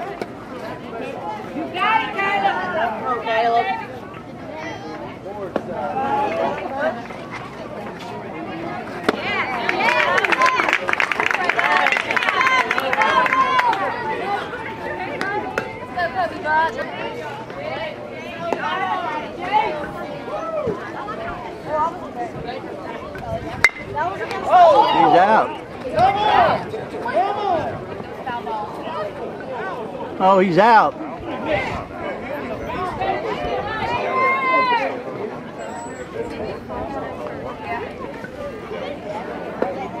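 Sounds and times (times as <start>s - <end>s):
spectators chattering: 0.0s - 40.0s
metal bat hitting a ball: 23.6s - 23.9s.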